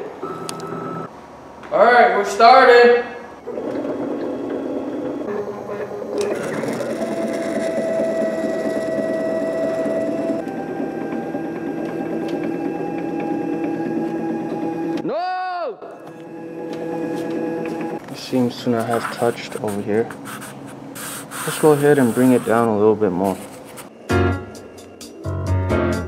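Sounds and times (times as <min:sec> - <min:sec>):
router motors whining: 0:03.4 - 0:15.0.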